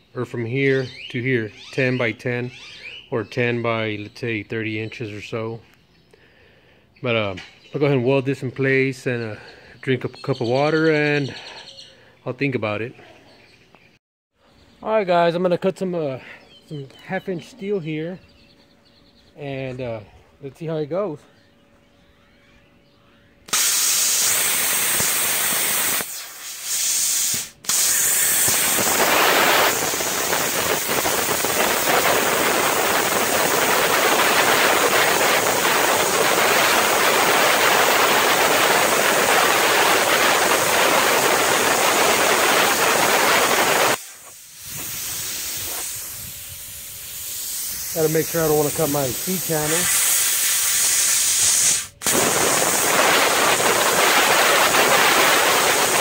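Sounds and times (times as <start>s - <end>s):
plasma cutter hissing: 23.5s - 56.0s
quiet air hiss: 44.0s - 49.9s.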